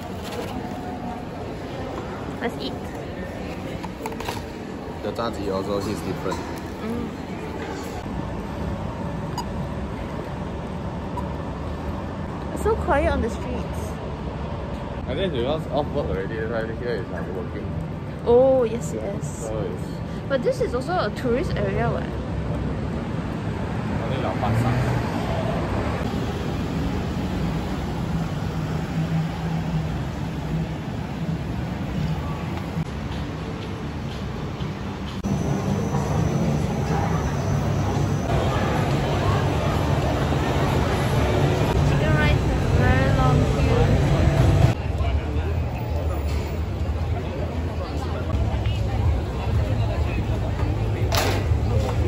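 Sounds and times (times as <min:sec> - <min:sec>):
traffic rumble: 0:00.0 - 0:52.0.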